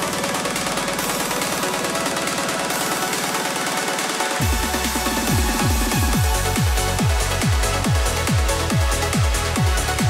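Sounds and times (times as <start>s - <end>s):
pulsing synth pattern: 0.0s - 10.0s.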